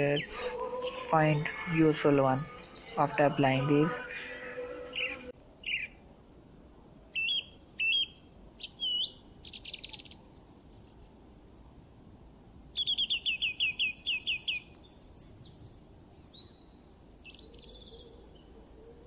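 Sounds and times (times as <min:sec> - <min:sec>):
bird trill: 0:00.0 - 0:06.0, 0:07.2 - 0:11.1
birds chirping: 0:00.0 - 0:06.0.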